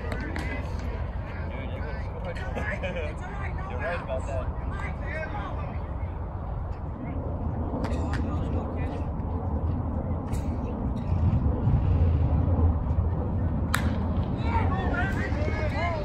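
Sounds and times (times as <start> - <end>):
low rumble: 4.4 - 16.0
sharp crack: 13.7 - 14.3.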